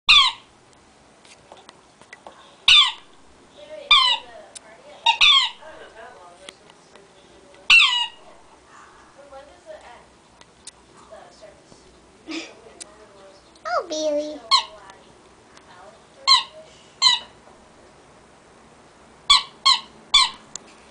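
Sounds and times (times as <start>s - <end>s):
rubber squeaky toy squeaking: 0.1s - 0.4s, 3.9s - 4.3s, 5.0s - 5.6s, 7.7s - 8.2s.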